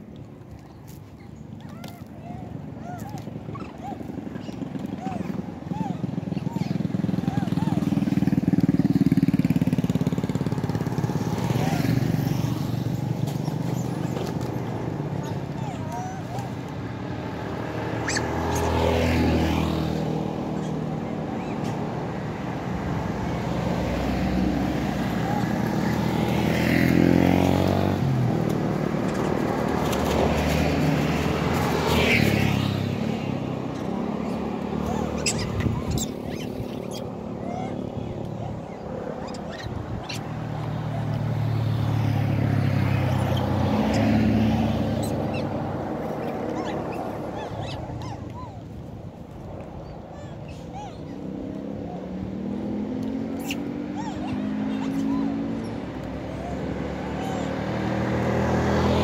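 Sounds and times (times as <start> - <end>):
motorcycles passing: 0.0 - 59.0.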